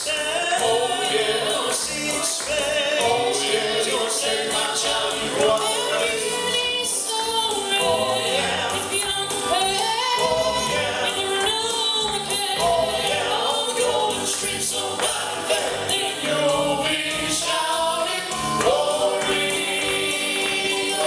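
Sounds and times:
male quartet singing in harmony: 0:00.0 - 0:21.0.

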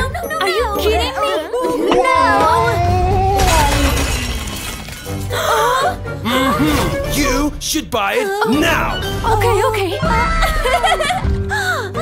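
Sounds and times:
candies scattering: 0:03.2 - 0:05.6
glass jar shattering: 0:03.4 - 0:05.3.

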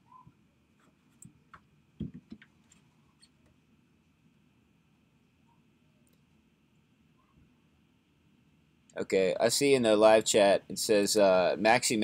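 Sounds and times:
thin steady whine: 0:00.0 - 0:12.0.

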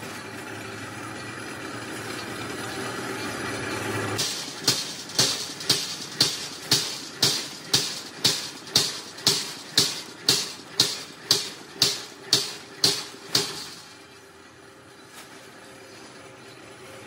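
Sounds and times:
punch press metallic clanks: 0:04.2 - 0:14.1.

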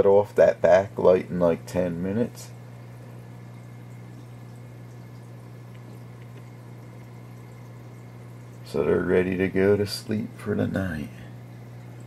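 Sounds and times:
aquarium filter motor hum: 0:00.0 - 0:12.0
water trickling and dripping: 0:00.7 - 0:12.0.

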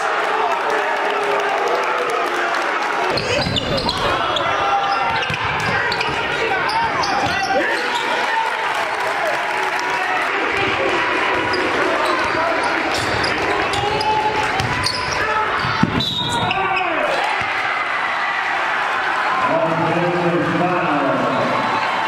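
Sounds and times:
players' voices: 0:00.0 - 0:22.0.

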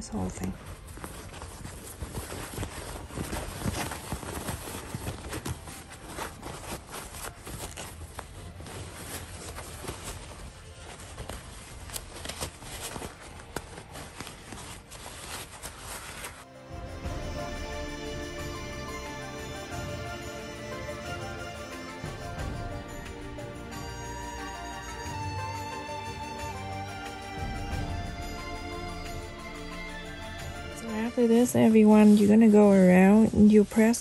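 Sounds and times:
fabric rustling and crinkling: 0:00.0 - 0:17.6, 0:30.7 - 0:34.0.

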